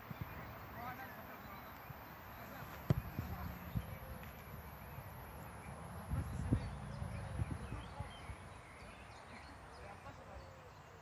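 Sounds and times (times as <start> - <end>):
faint outdoor background: 0.0 - 11.0
football being kicked: 2.7 - 3.4.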